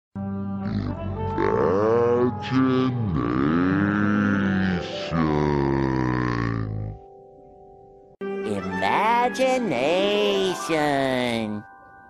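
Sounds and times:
deep distorted cartoon voice: 0.6s - 7.1s.

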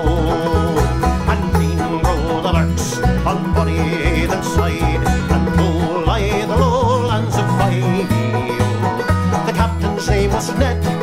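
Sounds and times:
deep pulsing bass: 0.0s - 11.0s
man singing folk ballad: 0.0s - 11.0s
plucked banjo: 0.0s - 11.0s.

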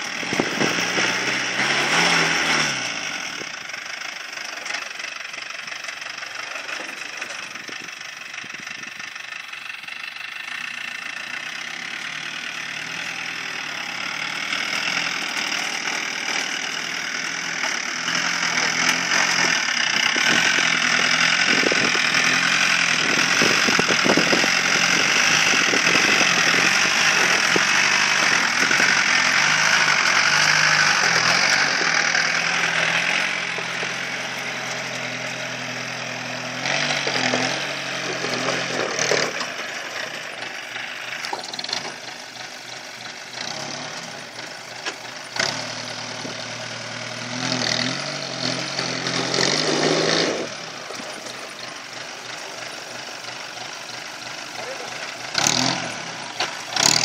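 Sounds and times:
off-road vehicle engine under load: 0.0s - 57.0s.

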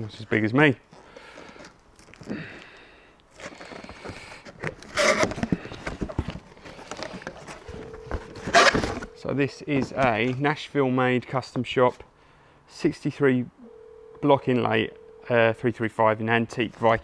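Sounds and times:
cardboard box flaps rustling: 4.5s - 9.1s.

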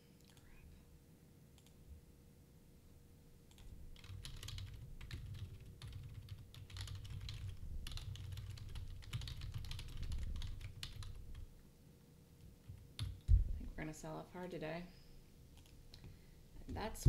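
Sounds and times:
fast typing on keyboard: 3.5s - 11.5s, 12.6s - 13.3s.

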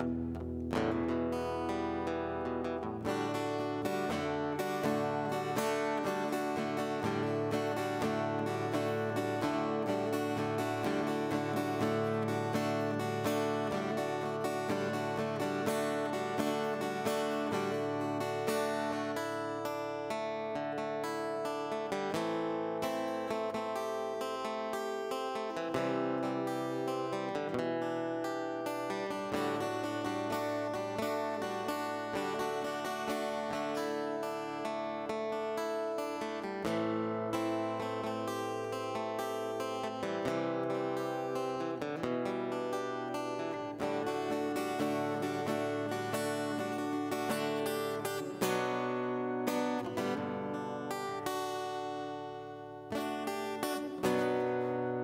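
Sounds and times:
acoustic guitar playing chords: 0.0s - 55.0s.

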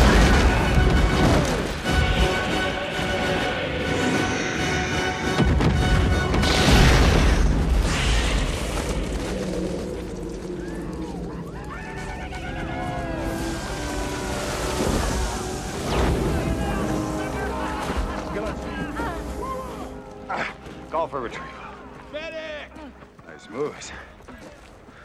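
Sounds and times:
orchestral score: 0.0s - 23.8s
voices shouting: 10.6s - 20.6s.

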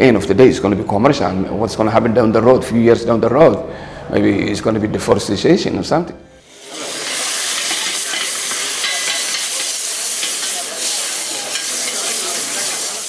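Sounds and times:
food sizzling in a pan: 6.4s - 13.0s
spatula stirring in a pan: 6.6s - 13.0s.

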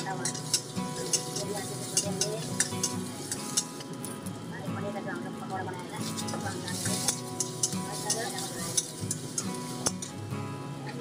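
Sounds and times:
metal spatula clanking on wok: 0.0s - 4.0s, 6.1s - 10.2s
food sizzling in wok: 0.0s - 11.0s.

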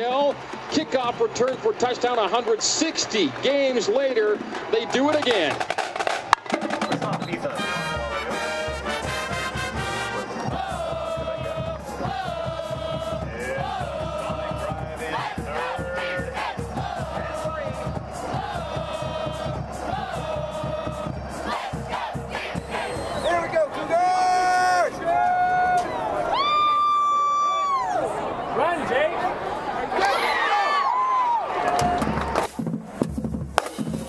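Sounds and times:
football crowd cheering: 0.0s - 34.0s
steady drum beat: 5.0s - 23.4s, 32.0s - 34.0s
marching band playing brass tune: 5.1s - 25.0s.

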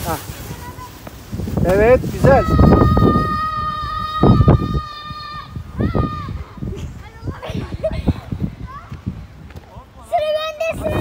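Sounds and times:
child's high-pitched squeal: 2.3s - 8.9s.

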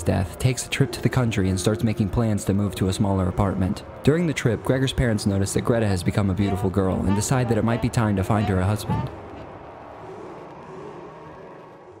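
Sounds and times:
low background drone: 0.0s - 12.0s.

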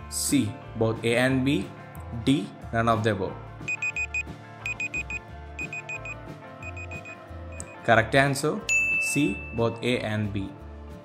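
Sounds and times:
background music with low bass: 0.0s - 11.0s
quick high electronic beeps: 3.7s - 7.8s.

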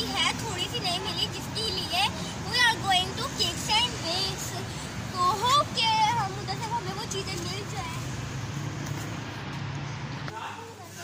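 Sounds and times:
road noise: 0.0s - 11.0s
vehicle engine humming: 0.0s - 11.0s.

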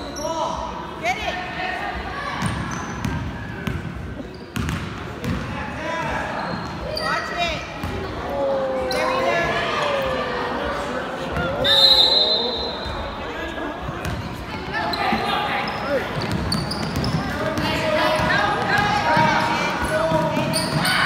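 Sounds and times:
sneakers squeaking: 2.4s - 9.6s, 11.3s - 21.0s
basketball bouncing: 4.6s - 5.4s.

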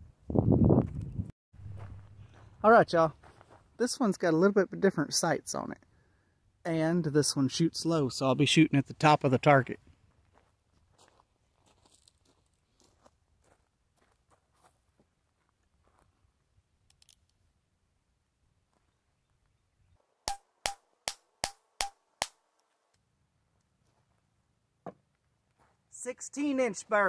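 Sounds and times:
gun handling clicks: 16.9s - 17.3s.

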